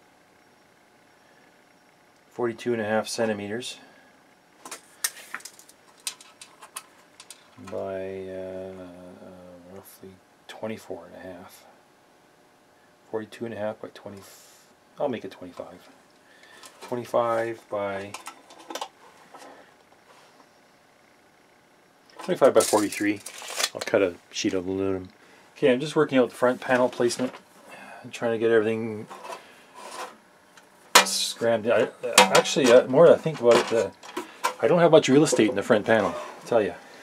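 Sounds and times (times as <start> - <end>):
tape measure scraping on metal: 29.1 - 30.2.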